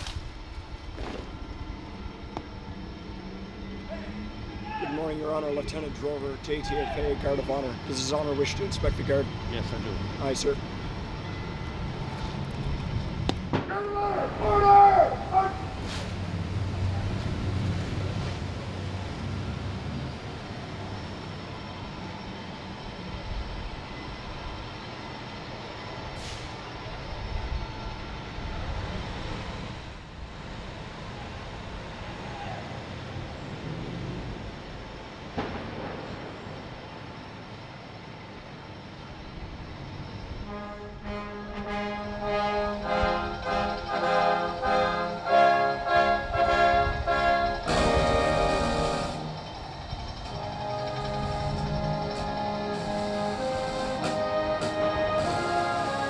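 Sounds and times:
outdoor background hum: 0:00.0 - 0:56.0
brass band playing a march: 0:40.4 - 0:49.4, 0:50.3 - 0:56.0.

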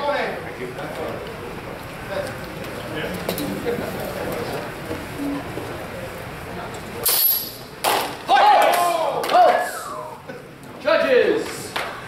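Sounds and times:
murmur of voices in a hall: 0:00.0 - 0:12.0
swords clashing with metallic ring: 0:07.0 - 0:07.6
loud shouts: 0:08.2 - 0:10.2.

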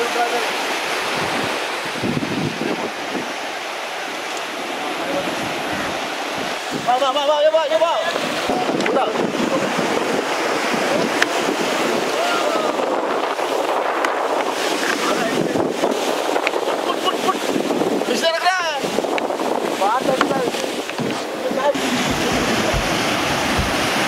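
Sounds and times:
surf breaking around boat: 0:00.0 - 0:24.0
wind buffeting microphone: 0:00.0 - 0:24.0.

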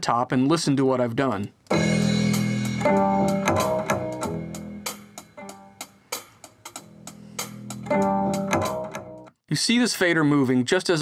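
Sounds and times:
bass guitar: 0:01.7 - 0:05.9, 0:06.8 - 0:09.3
guitar: 0:01.7 - 0:06.0, 0:06.8 - 0:09.3
drums with hi-hat: 0:01.7 - 0:09.2.

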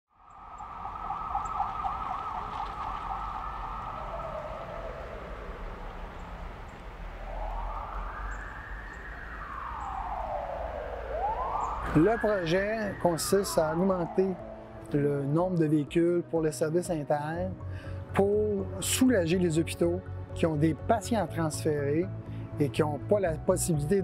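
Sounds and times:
low rumble: 0:00.1 - 0:14.8
ambulance siren: 0:00.3 - 0:15.3.

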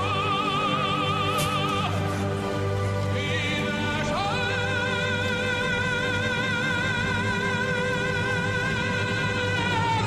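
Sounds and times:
musical accompaniment: 0:00.0 - 0:10.0.

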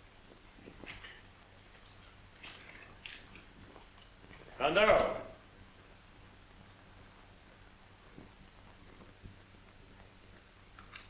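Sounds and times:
faint soundtrack hiss: 0:00.0 - 0:11.0.

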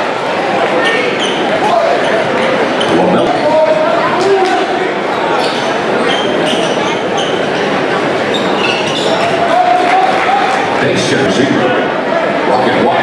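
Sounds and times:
crowd and player voices echoing: 0:00.0 - 0:13.0
sneaker squeaks on court: 0:08.3 - 0:09.3.

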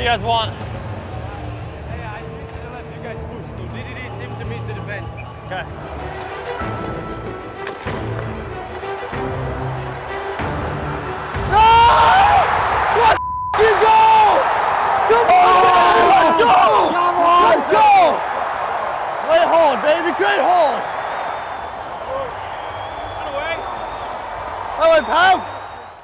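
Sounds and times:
background music: 0:00.0 - 0:18.0
people shouting and cheering: 0:03.7 - 0:26.0.

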